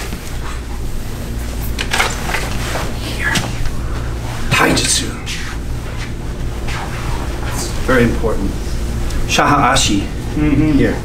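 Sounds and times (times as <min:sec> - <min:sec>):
scuffs and rustles of people moving: 0:00.0 - 0:09.3.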